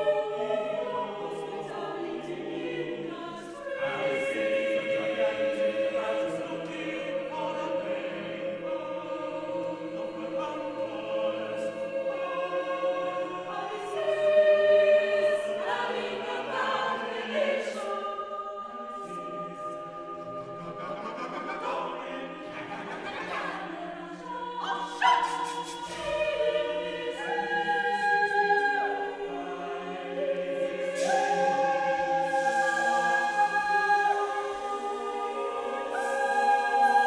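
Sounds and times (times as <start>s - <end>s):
choir singing a cappella: 0.0s - 37.0s.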